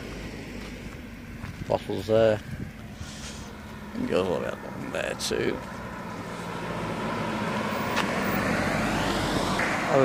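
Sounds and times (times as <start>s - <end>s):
car driving past: 2.9s - 10.0s.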